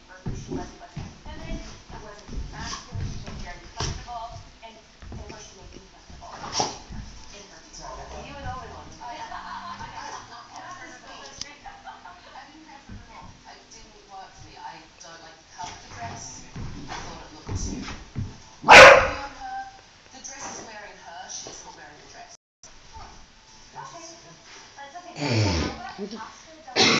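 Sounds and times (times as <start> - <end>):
dog barking: 18.6 - 19.3.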